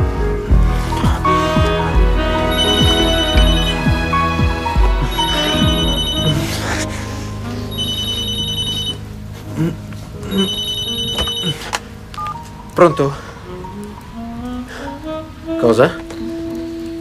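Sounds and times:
soft background music: 0.0s - 17.0s
cordless telephone ringing: 5.2s - 6.3s, 7.8s - 9.0s, 10.3s - 11.6s.

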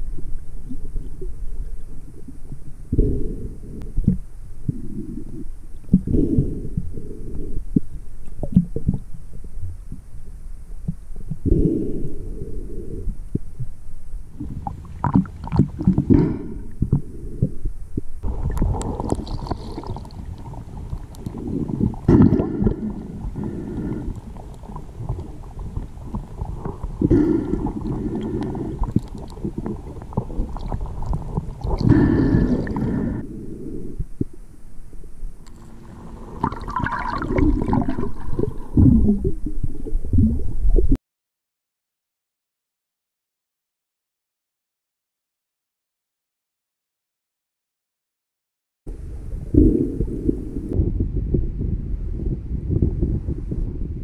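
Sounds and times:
underwater water rumble: 0.0s - 41.0s, 48.9s - 54.0s
water gurgle: 0.0s - 41.0s, 49.1s - 54.0s.

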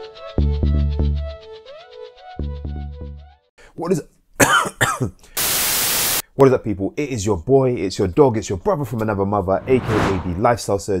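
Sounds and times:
man clearing throat: 4.4s - 5.2s.

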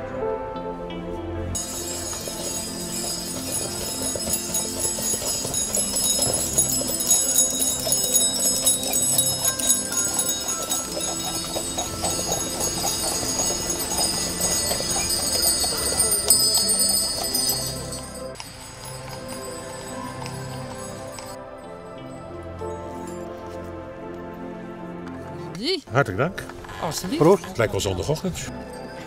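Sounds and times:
background music: 0.0s - 29.0s
sleigh bells jingling: 1.6s - 23.6s.

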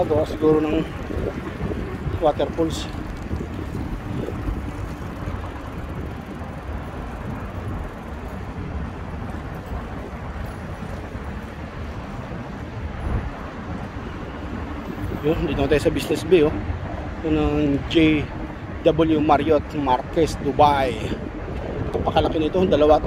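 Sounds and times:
wind buffeting microphone: 0.0s - 23.0s.

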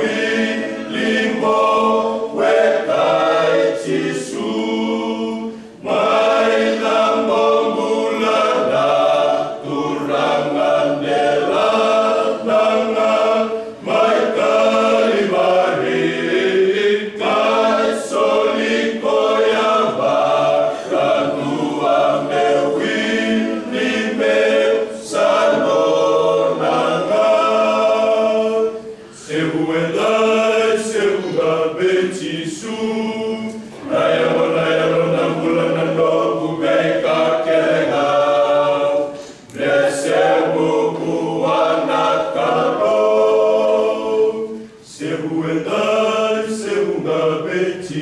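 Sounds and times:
men's choir singing unaccompanied: 0.0s - 48.0s.

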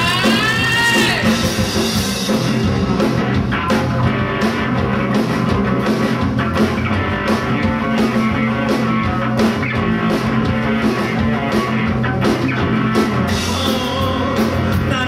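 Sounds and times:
bass guitar: 0.0s - 15.0s
distorted electric guitar: 0.0s - 15.0s
drum and cymbal hits: 0.0s - 15.0s.

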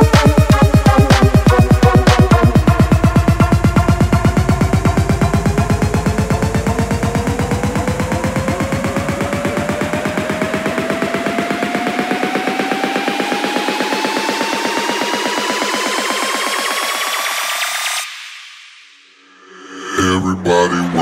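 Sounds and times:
bass: 0.0s - 11.8s
fast pulsing electronic rhythm: 0.0s - 21.0s
rising synth sweep: 16.1s - 21.0s.

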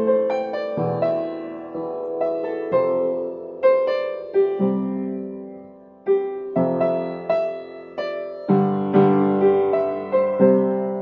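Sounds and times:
solo piano playing: 0.0s - 11.0s.

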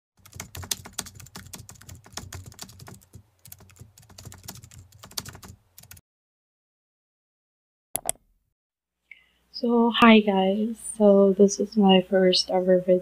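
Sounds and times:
keyboard typing: 0.2s - 6.0s, 8.0s - 8.2s.

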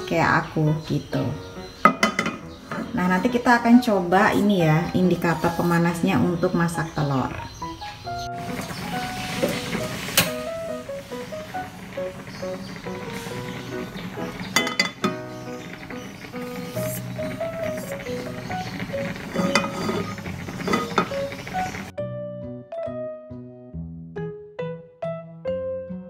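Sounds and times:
frying pan clinking on stove: 1.8s - 3.0s, 12.0s - 21.9s
room noise: 7.1s - 21.9s
light stepping melody music: 7.4s - 26.0s.

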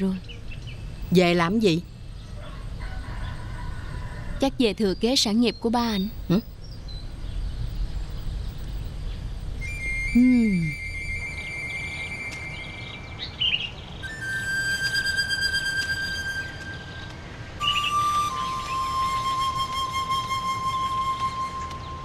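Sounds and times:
low ambient hiss: 0.0s - 22.0s
bird chirps: 4.6s - 14.2s, 14.8s - 19.6s
flute holding long notes: 9.6s - 13.1s, 14.0s - 22.0s.

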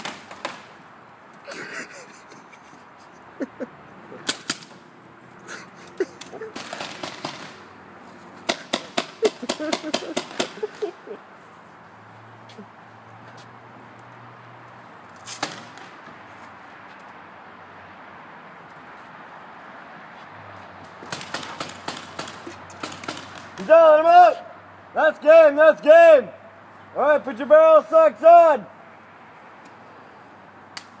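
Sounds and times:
outdoor background noise: 0.0s - 31.0s
paintball marker shot: 21.1s - 23.6s.

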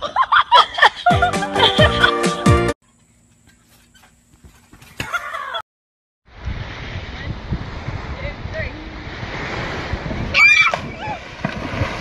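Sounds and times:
bare feet landing on trampoline: 3.4s - 5.6s.

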